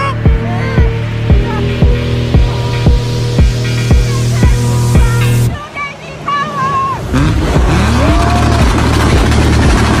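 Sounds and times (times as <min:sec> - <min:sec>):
car engine revving: 0:00.0 - 0:05.6, 0:07.0 - 0:10.0
music with steady bass beat: 0:00.0 - 0:05.6, 0:07.2 - 0:10.0.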